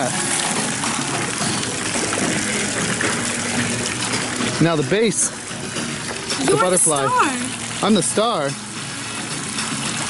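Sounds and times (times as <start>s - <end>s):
fountain water jets splashing: 0.0s - 10.0s.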